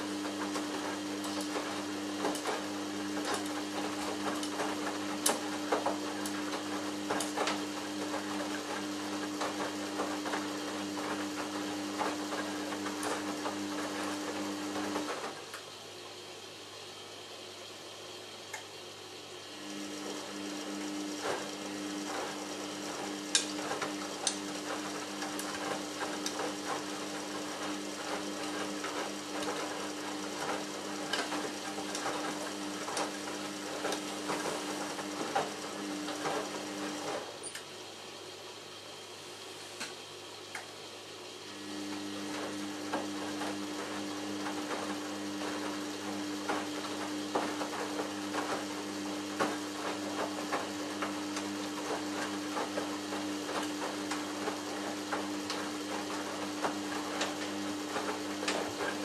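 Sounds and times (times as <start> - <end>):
washing machine motor hum: 0.0 - 59.0
water and laundry sloshing in drum: 19.7 - 37.5, 42.0 - 59.0.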